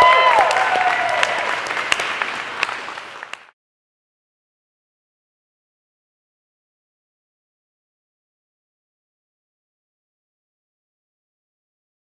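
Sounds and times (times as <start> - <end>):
audience applauding: 0.0 - 3.6.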